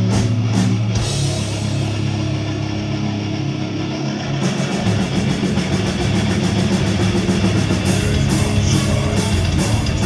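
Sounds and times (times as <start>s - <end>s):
heavy metal band playing live: 0.0s - 10.0s.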